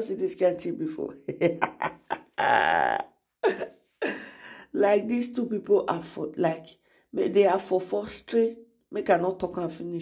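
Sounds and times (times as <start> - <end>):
person's rough drawn-out vocal sound: 2.2 - 3.1.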